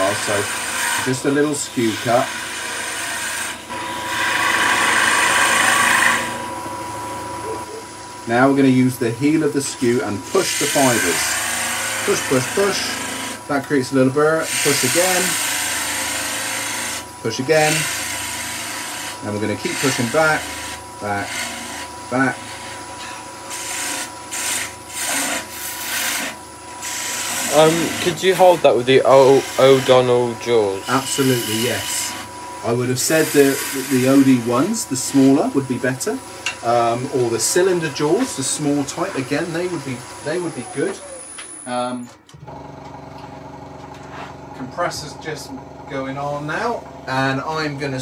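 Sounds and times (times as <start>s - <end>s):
chisel cutting wood on a lathe: 0.0s - 43.1s, 43.7s - 48.0s
lathe running with thin tone: 0.0s - 48.0s.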